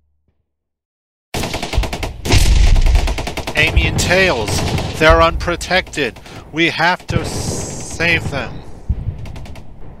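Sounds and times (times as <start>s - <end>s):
rapid machine-gun fire: 1.4s - 10.0s.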